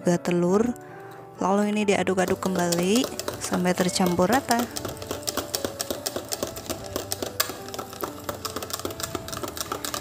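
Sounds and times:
whisk rattling against plastic jug: 0:02.1 - 0:10.0.

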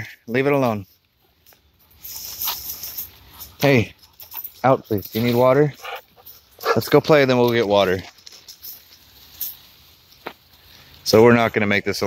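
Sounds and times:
rustling in dry leaves: 0:00.0 - 0:12.0.

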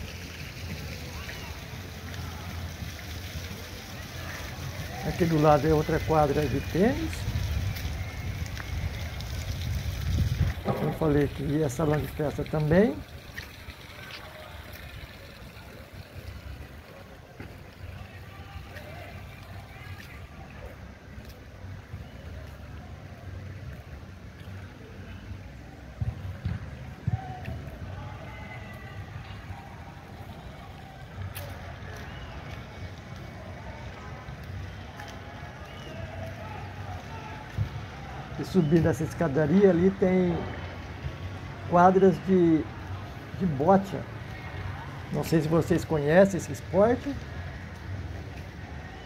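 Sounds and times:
faint distant voices: 0:00.0 - 0:09.6, 0:10.5 - 0:49.0.

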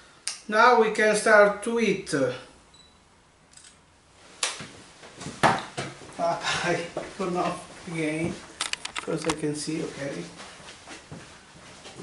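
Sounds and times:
person speaking: 0:06.2 - 0:10.4.

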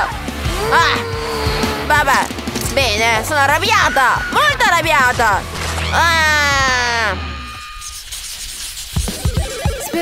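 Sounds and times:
music with steady drum beat: 0:00.0 - 0:05.5, 0:09.0 - 0:10.0.

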